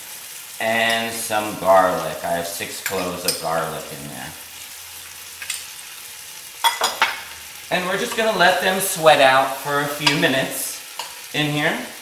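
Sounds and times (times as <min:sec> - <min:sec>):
food sizzling in hot oil: 0:00.0 - 0:12.0.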